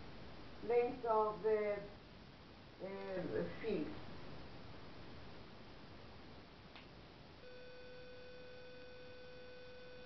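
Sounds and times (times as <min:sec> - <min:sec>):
faint steady electronic tone: 0:03.9 - 0:10.0.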